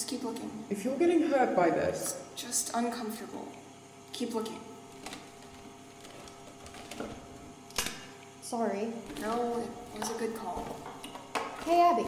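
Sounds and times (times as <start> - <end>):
objects being handled: 4.9 - 8.0, 9.0 - 12.0.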